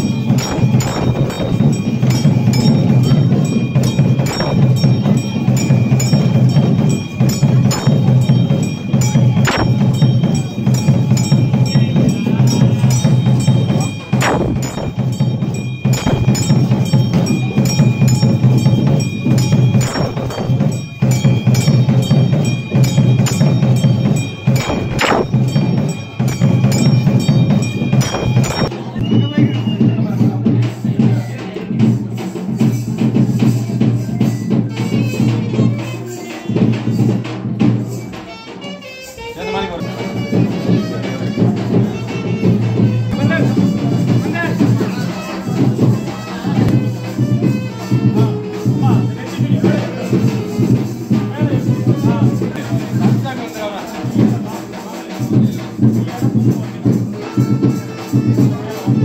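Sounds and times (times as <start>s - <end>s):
loud ringing bell stroke: 0.0s - 29.0s
bells ringing: 0.0s - 40.7s
percussion in fast rhythm: 0.0s - 59.0s.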